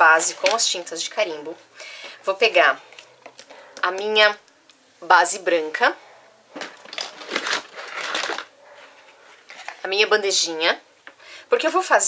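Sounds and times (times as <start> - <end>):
paper rustling and scraping: 6.6 - 10.1.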